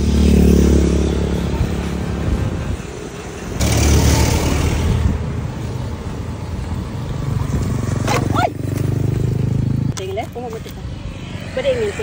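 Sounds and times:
road traffic passing: 0.0s - 12.0s.

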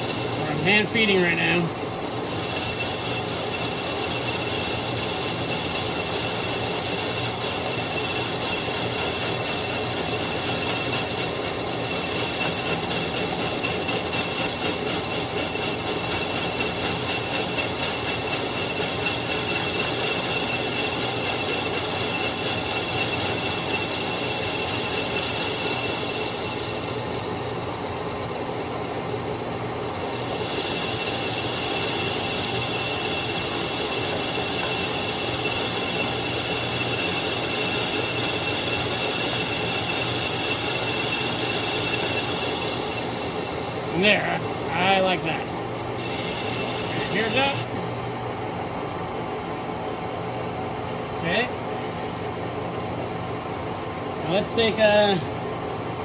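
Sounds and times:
cutting tool on metal: 0.0s - 27.6s, 30.0s - 47.8s
metal lathe whining: 0.0s - 56.0s.

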